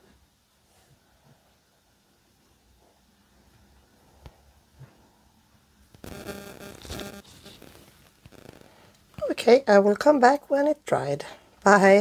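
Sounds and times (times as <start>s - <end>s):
rustling and scraping: 6.0s - 8.8s.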